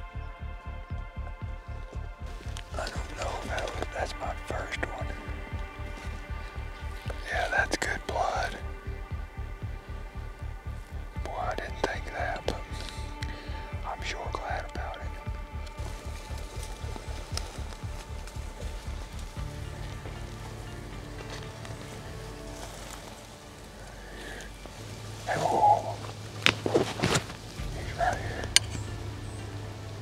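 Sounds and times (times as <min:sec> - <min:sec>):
music with low bass notes: 0:00.0 - 0:30.0
sharp snaps and rustles: 0:11.2 - 0:30.0.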